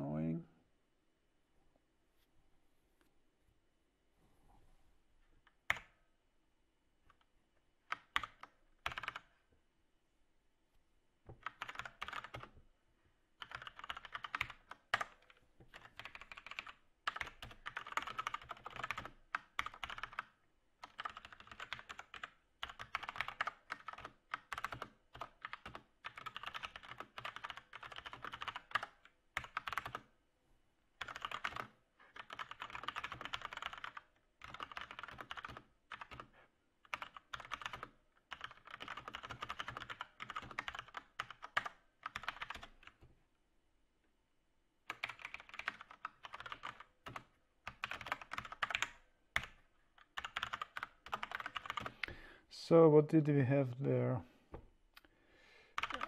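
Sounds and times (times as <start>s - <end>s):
typing on computer keyboard: 7.8s - 9.3s, 11.3s - 12.5s, 13.4s - 30.1s, 31.0s - 43.0s, 44.9s - 52.2s, 55.8s - 56.0s.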